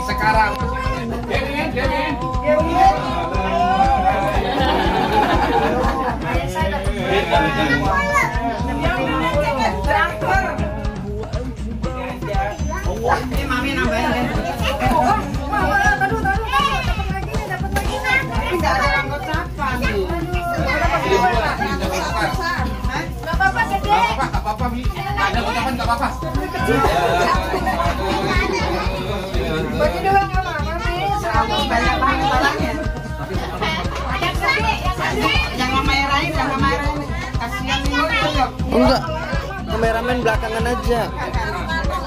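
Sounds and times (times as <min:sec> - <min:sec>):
background music: 0:00.0 - 0:42.0
children talking and calling out: 0:00.0 - 0:42.0.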